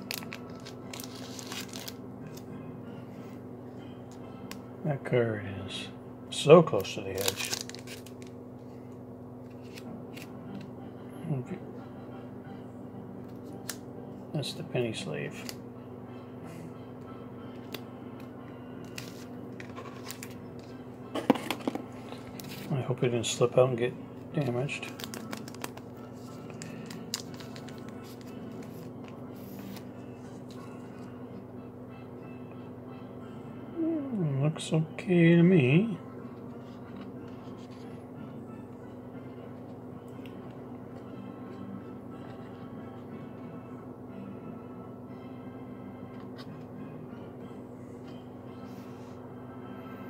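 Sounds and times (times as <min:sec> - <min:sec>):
plastic card sleeve handling: 0:00.0 - 0:02.5, 0:06.8 - 0:08.4, 0:09.4 - 0:10.7, 0:18.8 - 0:22.7, 0:24.4 - 0:31.1
steady low hum: 0:00.0 - 0:50.0.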